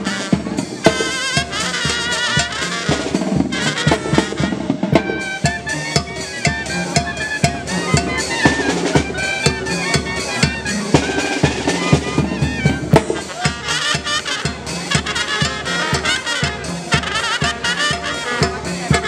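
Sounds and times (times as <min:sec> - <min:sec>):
bass drum: 0:00.0 - 0:19.0
brass band music: 0:00.0 - 0:19.0
snare drum: 0:00.0 - 0:19.0.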